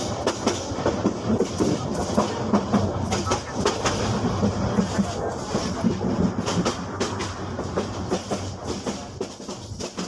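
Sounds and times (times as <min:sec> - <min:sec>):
train low rumble: 0:00.0 - 0:10.0
train wheels clacking on rails: 0:00.0 - 0:10.0.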